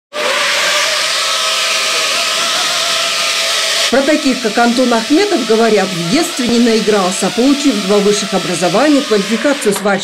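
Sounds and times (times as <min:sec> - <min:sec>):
drone motors buzzing: 0:00.1 - 0:10.0.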